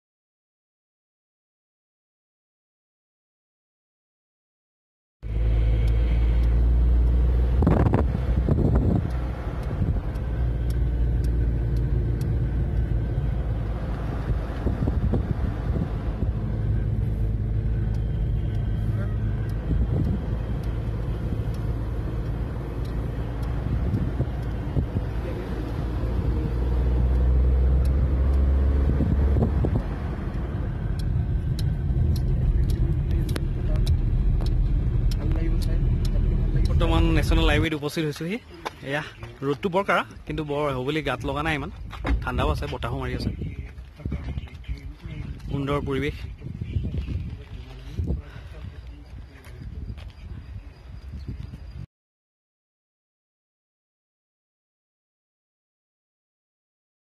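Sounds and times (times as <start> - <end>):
car engine and road noise: 5.2 - 51.9.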